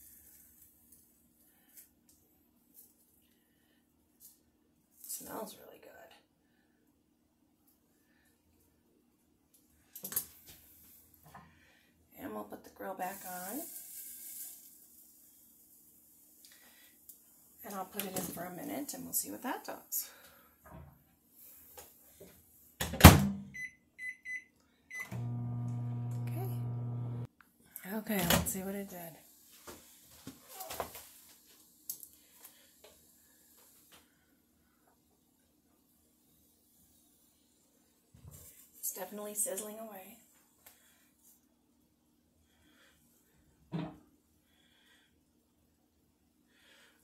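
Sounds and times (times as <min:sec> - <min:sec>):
corn sizzling on a grill: 0:13.1 - 0:15.4
short hiss: 0:13.6 - 0:14.8
faint steady hum: 0:24.9 - 0:27.3.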